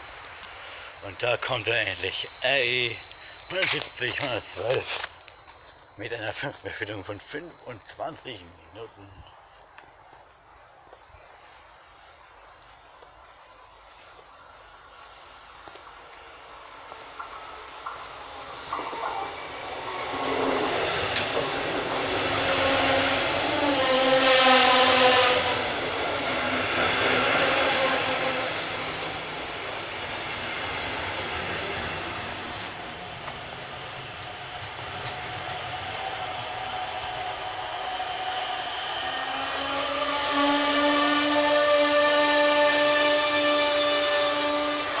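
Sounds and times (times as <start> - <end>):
train whine: 0.0 - 45.0
train wheels rumbling on rail: 12.8 - 45.0.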